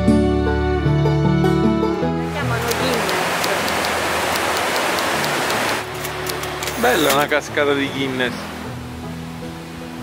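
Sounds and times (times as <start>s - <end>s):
background music: 0.0s - 10.0s
waterfall rushing: 2.2s - 10.0s.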